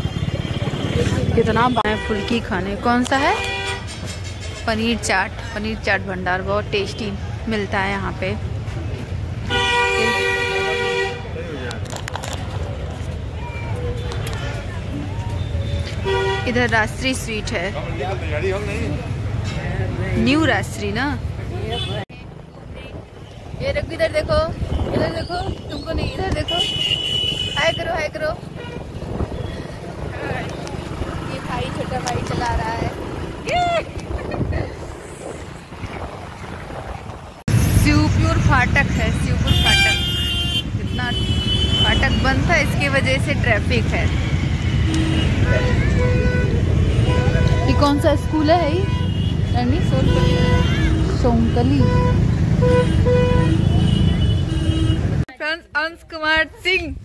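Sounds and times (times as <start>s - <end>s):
voices: 0.0s - 3.8s, 9.8s - 36.0s, 37.5s - 52.6s
low street rumble: 0.0s - 57.0s
surrounding traffic: 0.0s - 57.0s
vehicle horn honk: 9.5s - 11.3s, 26.4s - 27.9s, 39.5s - 42.3s, 44.6s - 55.2s
wind buffeting microphone: 22.4s - 26.7s, 27.3s - 39.4s.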